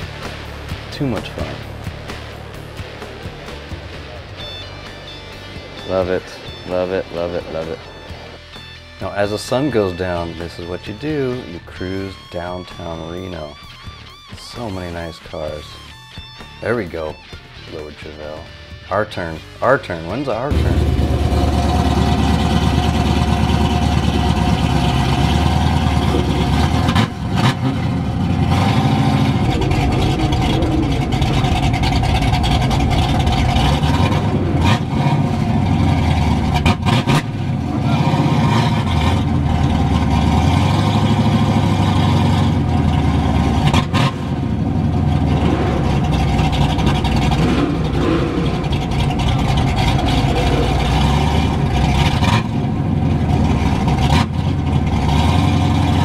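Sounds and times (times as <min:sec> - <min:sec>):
car engine and exhaust: 0:00.0 - 0:56.0.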